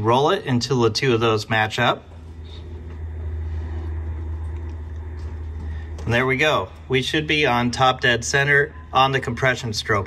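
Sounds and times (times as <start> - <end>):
low rumble of car rolling: 0.0 - 10.0.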